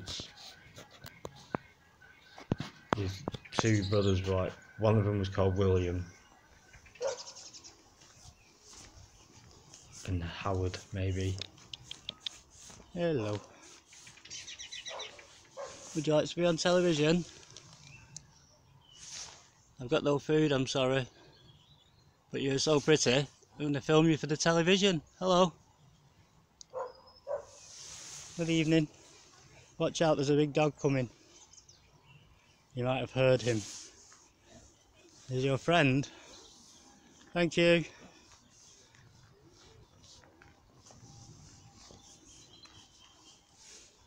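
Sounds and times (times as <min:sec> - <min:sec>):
high bird chirping: 0:00.3 - 0:16.0, 0:40.9 - 0:44.0
big dog barking: 0:07.0 - 0:07.4, 0:14.9 - 0:15.8, 0:26.7 - 0:27.6.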